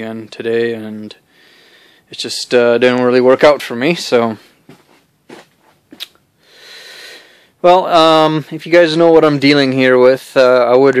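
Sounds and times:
soft hiss: 0.0s - 8.8s.

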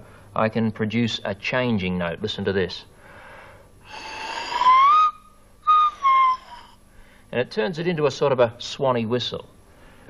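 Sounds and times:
slide whistle gliding notes: 4.0s - 6.8s.

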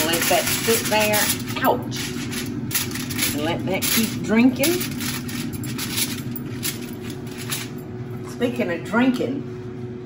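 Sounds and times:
aluminum foil crinkling: 0.0s - 7.8s
paper towel rustling: 0.0s - 7.8s.

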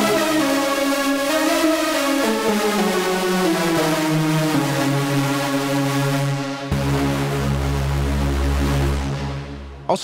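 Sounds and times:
distorted synthesizer note held: 3.5s - 10.0s.

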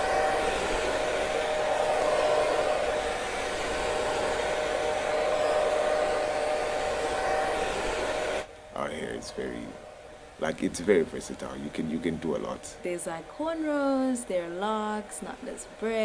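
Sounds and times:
hair dryer running: 0.0s - 16.0s.

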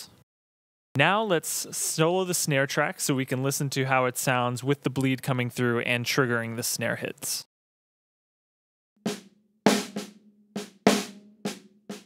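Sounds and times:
snare drum hits: 9.1s - 12.0s.

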